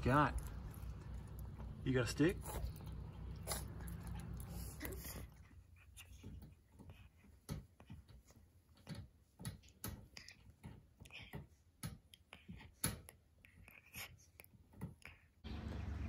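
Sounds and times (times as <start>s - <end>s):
puppy teeth scratching on metal: 0.0s - 15.3s.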